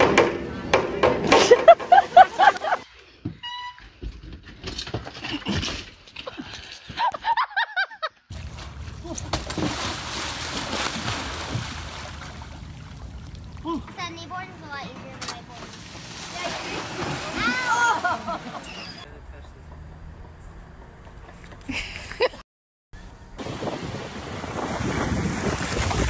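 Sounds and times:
people yelling and laughing: 1.3 - 2.8, 16.3 - 19.0
water splashing: 1.4 - 2.8, 8.3 - 19.0.

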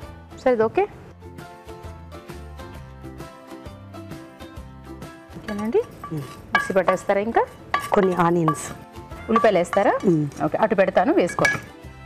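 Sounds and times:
spatula scraping frying pan: 5.5 - 10.4.

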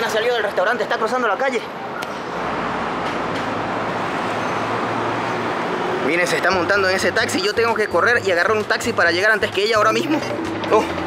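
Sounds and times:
city street traffic: 0.0 - 11.0.

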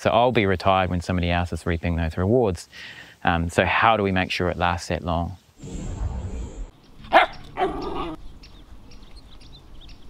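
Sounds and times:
short rushing noise: 5.6 - 7.1
dog barking: 7.1 - 8.2.

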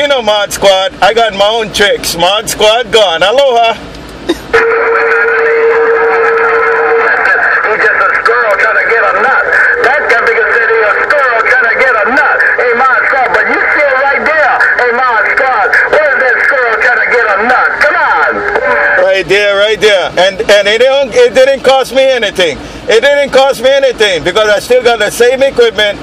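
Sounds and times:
garbled radio voices: 4.4 - 26.0
radio static hiss: 4.5 - 21.6.

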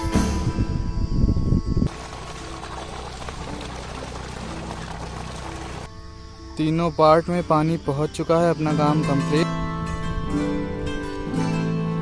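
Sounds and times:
water gushing from pipe: 1.9 - 5.9.

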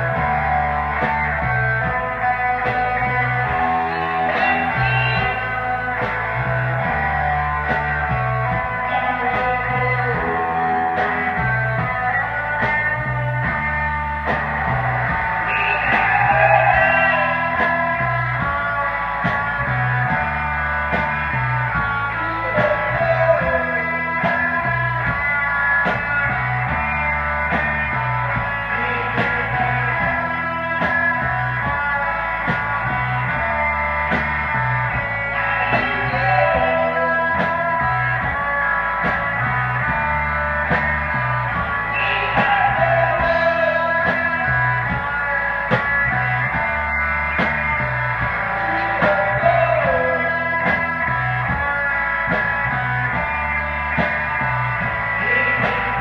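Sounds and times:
bass guitar: 0.0 - 56.0
drums on a steady beat: 0.0 - 56.0
electric guitars: 0.0 - 56.0.

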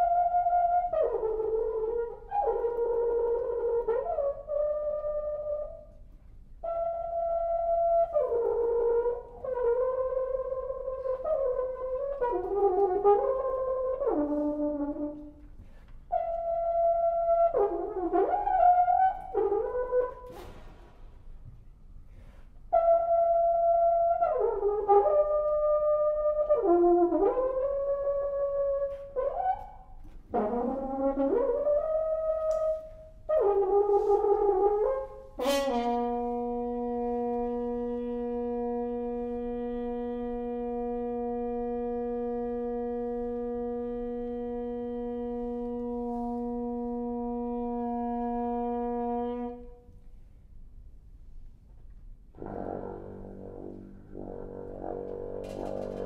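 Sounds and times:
french horn playing: 6.6 - 20.9, 22.1 - 50.0, 52.3 - 56.0.

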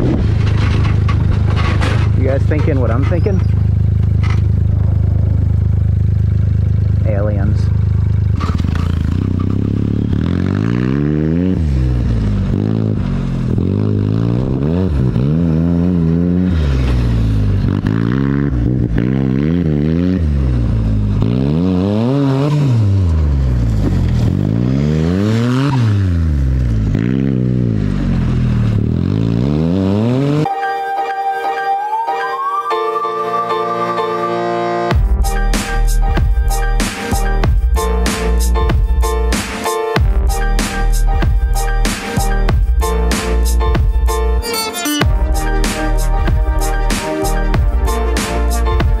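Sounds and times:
buggy engine revving: 0.0 - 30.5, 34.9 - 49.0
music: 30.5 - 49.0.

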